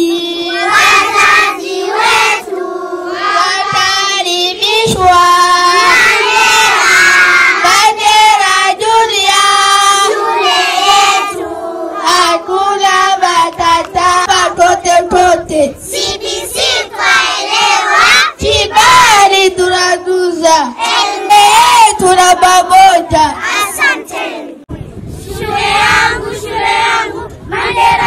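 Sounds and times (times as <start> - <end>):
girls singing in unison: 0.0 - 24.6, 25.3 - 28.0.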